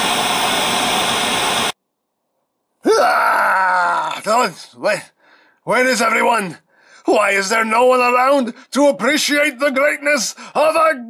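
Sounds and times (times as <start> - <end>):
man groaning: 2.8 - 4.3.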